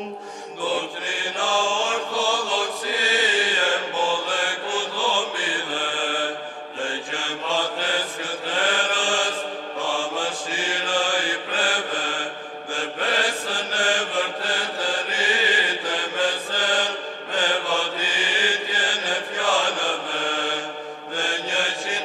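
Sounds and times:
voices chanting a hymn: 0:00.0 - 0:22.0.

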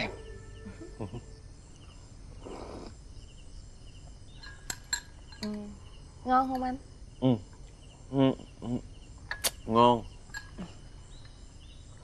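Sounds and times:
crickets chirping: 0:00.0 - 0:12.0
spoon clinking porcelain bowl: 0:04.4 - 0:05.6, 0:10.3 - 0:10.7.

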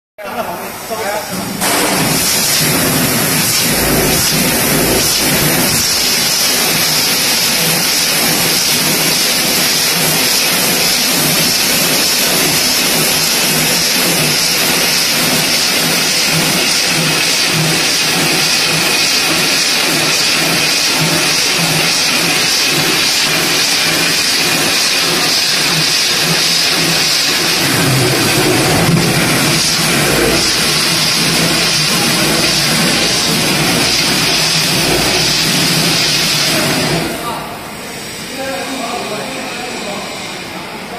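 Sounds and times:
machine pulsing: 0:01.3 - 0:37.6
tape winding machine hissing: 0:01.5 - 0:40.8.

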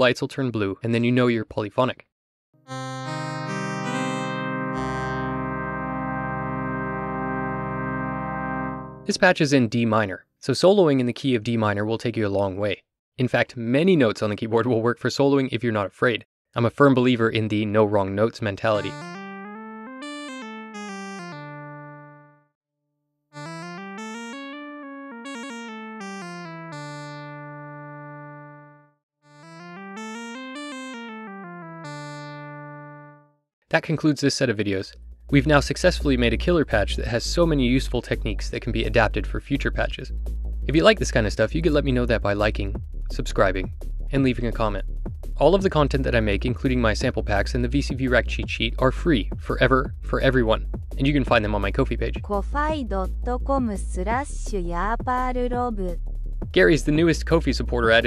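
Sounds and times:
synth playing a chord: 0:02.6 - 0:09.1, 0:18.8 - 0:22.4, 0:23.4 - 0:33.3.

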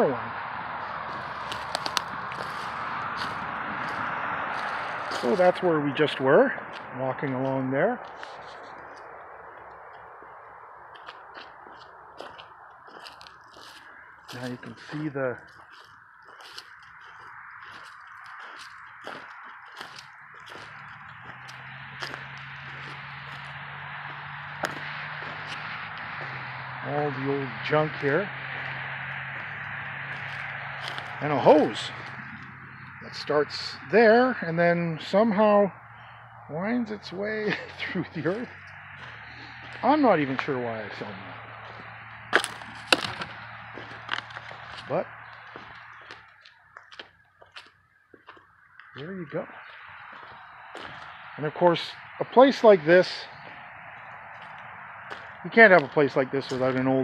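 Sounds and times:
steady outdoor hiss: 0:00.0 - 0:57.0
footsteps crunching on gritty concrete: 0:01.1 - 0:05.6, 0:06.7 - 0:09.0, 0:10.9 - 0:26.4, 0:28.5 - 0:32.5, 0:37.4 - 0:51.3, 0:53.3 - 0:57.0.

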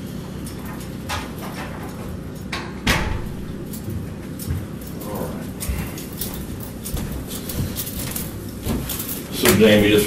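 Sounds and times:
footsteps: 0:03.8 - 0:10.0.

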